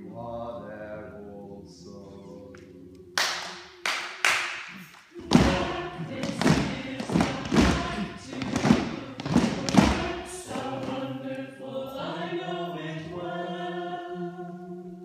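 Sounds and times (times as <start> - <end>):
loud irregular knocks and thuds: 5.2 - 11.0
group singing a chord: 5.2 - 15.0.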